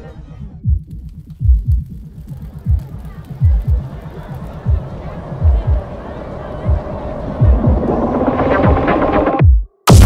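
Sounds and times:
electronic dance music: 0:07.4 - 0:10.0.

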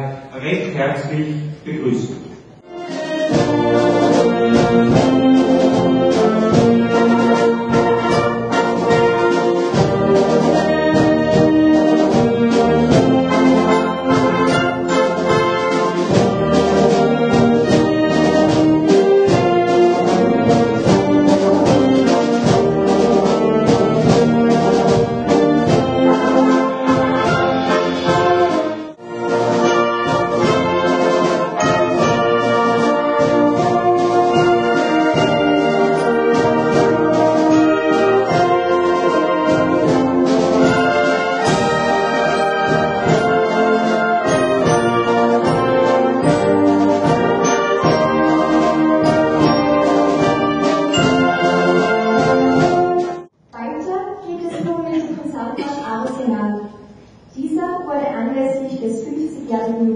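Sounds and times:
trombones and trumpets: 0:00.0 - 0:53.3
wind band playing: 0:00.0 - 0:53.4.

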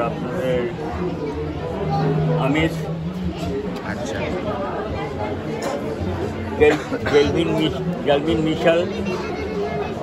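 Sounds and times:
people talking indoors: 0:00.0 - 0:10.0.

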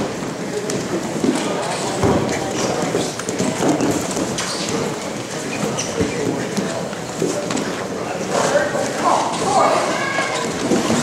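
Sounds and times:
wrestlers thudding on foam mats: 0:00.0 - 0:07.7, 0:09.4 - 0:11.0
voices echoing in a hall: 0:00.0 - 0:11.0.

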